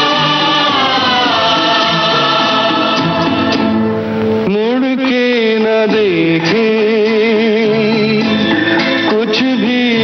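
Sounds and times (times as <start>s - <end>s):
person singing with vibrato: 0.0s - 3.8s, 4.4s - 10.0s
orchestral accompaniment: 0.0s - 4.5s.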